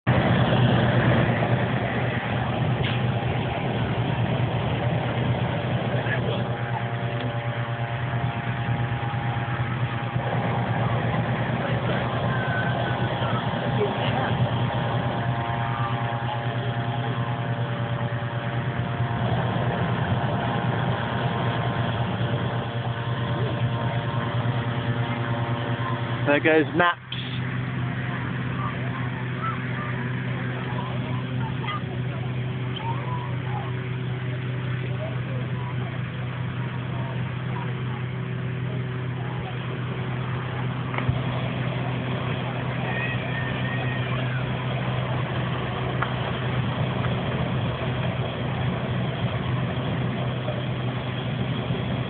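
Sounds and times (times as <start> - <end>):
higher steady engine tone: 0.0 - 52.0
inflator fans droning: 0.0 - 52.0.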